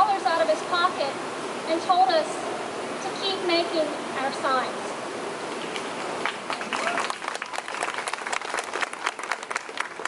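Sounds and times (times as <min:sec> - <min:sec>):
crowd applauding: 0:06.2 - 0:10.0.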